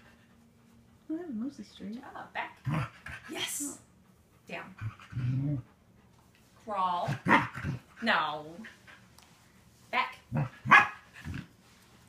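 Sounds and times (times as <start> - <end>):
dog barking: 10.6 - 11.0.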